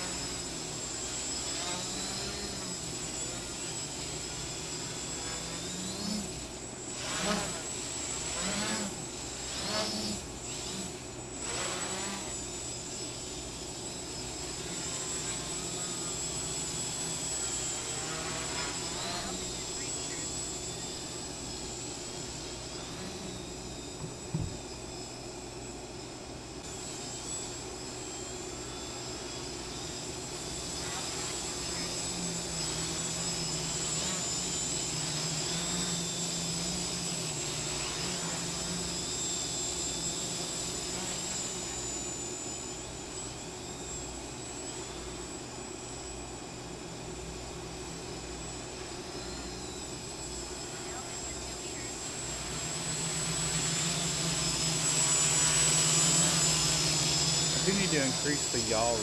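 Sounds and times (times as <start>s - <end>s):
quadcopter motors buzzing: 0.0s - 59.0s.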